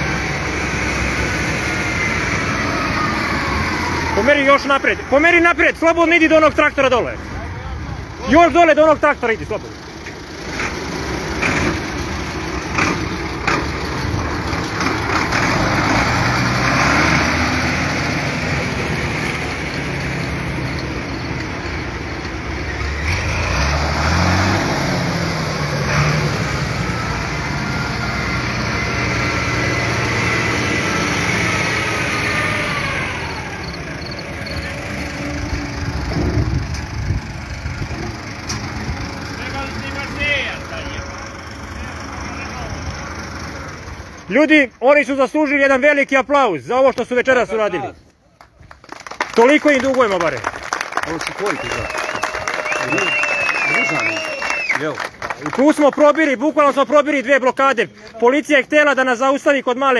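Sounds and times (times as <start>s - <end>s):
diesel tractor engines running: 0.0s - 59.9s.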